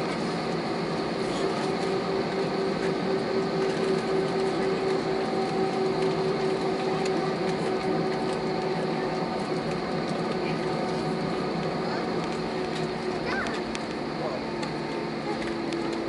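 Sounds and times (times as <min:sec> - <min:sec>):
jet engines humming in cabin: 0:00.0 - 0:16.0.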